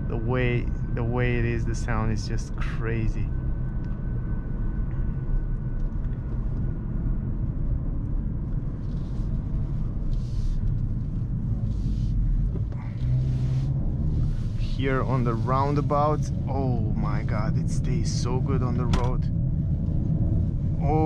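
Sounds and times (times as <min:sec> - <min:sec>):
car engine and exhaust: 0:00.0 - 0:21.0
road rumble: 0:00.0 - 0:21.0.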